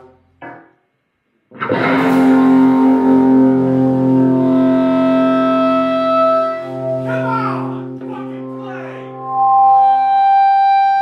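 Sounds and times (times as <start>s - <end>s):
electric guitar and bass chord ringing: 1.6s - 11.0s.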